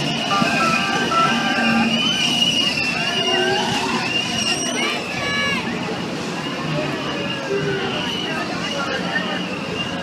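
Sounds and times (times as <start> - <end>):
high wavering squeals: 0.0 - 5.4
carnival ride machinery noise: 0.0 - 10.0
voices: 0.0 - 10.0.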